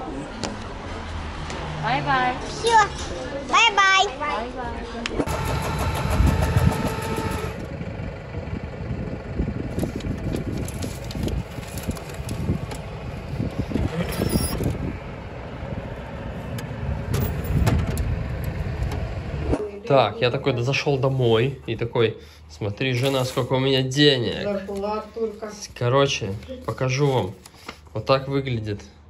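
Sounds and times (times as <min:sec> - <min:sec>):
vehicle engines passing: 0:00.0 - 0:29.0.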